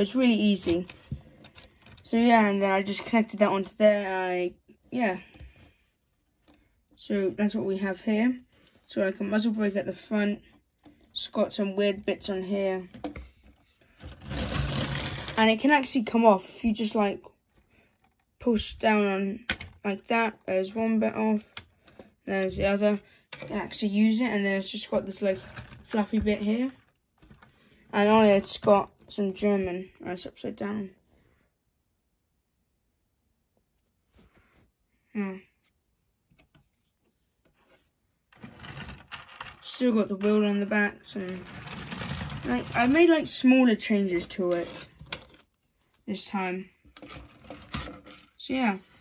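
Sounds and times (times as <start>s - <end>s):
hand scraping plastic bricks: 13.0s - 15.9s, 24.8s - 28.7s, 38.3s - 45.5s, 46.9s - 48.4s.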